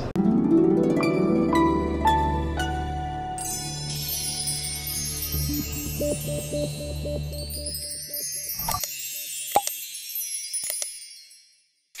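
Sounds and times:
high chimes and sparkling tones: 0:03.4 - 0:12.0.

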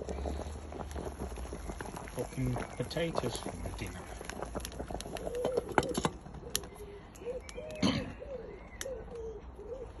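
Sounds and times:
dove cooing: 0:05.0 - 0:10.0.

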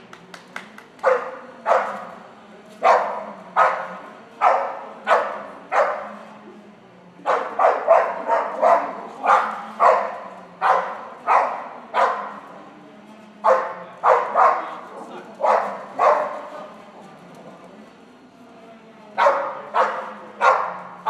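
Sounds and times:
dog barking: 0:01.0 - 0:02.1, 0:02.8 - 0:06.2, 0:07.2 - 0:12.4, 0:13.4 - 0:14.8, 0:15.4 - 0:16.6, 0:19.2 - 0:21.0.

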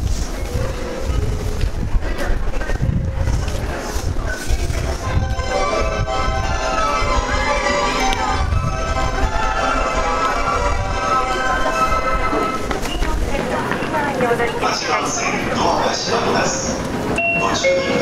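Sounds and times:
railway station departure melody: 0:00.0 - 0:18.0
recorded voice announcement: 0:13.0 - 0:18.0.

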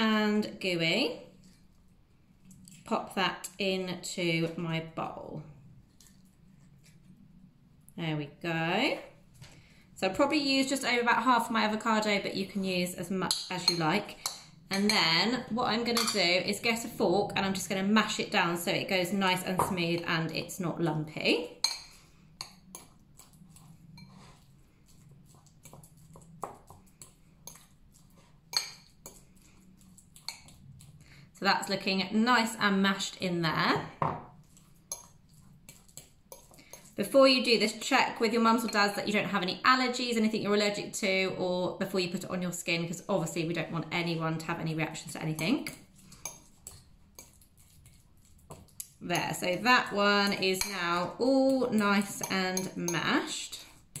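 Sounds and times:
fork clinking against ceramic bowl: 0:52.2 - 0:53.1.

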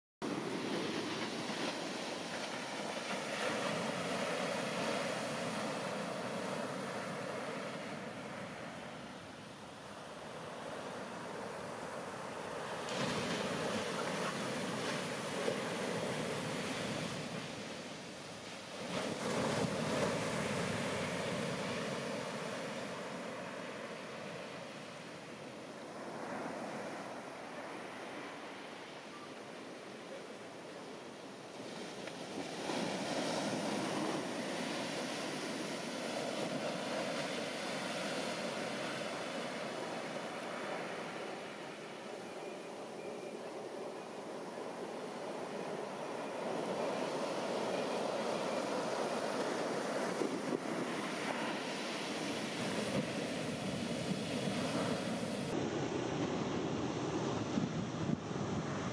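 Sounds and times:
waves crashing onto beach: 0:00.2 - 0:58.9.

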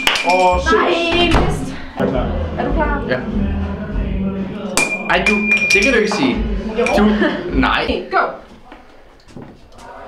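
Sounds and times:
stick hitting floor metallic clang: 0:00.0 - 0:00.7, 0:04.7 - 0:07.0.

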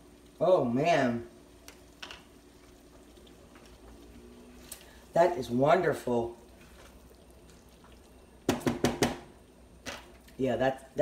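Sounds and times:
spatula knocking frying pan: 0:08.5 - 0:09.3.

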